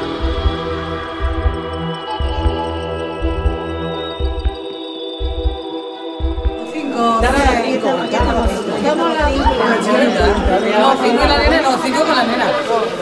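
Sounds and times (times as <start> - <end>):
people talking: 6.6 - 13.0.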